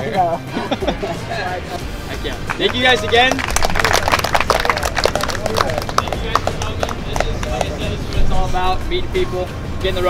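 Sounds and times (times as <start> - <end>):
voices talking: 0.0 - 10.0
crowd handclaps: 2.3 - 7.9.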